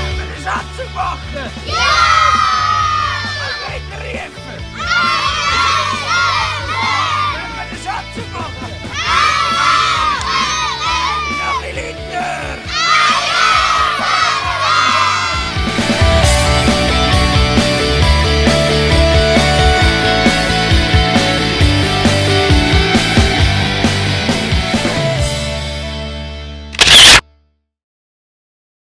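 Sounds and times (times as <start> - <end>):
music: 0.0 - 27.7
children shouting and cheering: 1.6 - 20.7
rock music chord: 15.4 - 26.7
camera shutter sound effect: 26.8 - 27.2.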